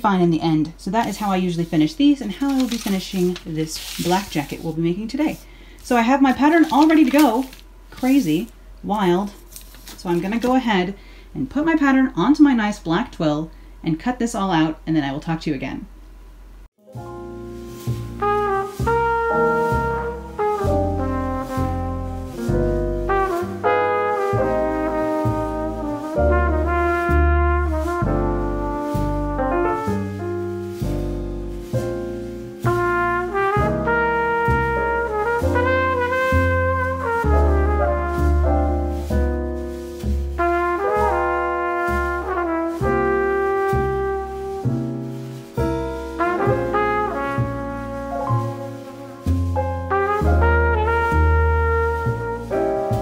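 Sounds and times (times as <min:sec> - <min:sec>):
instrumental music with brass: 0:16.8 - 0:53.0
low bass notes: 0:17.0 - 0:53.0.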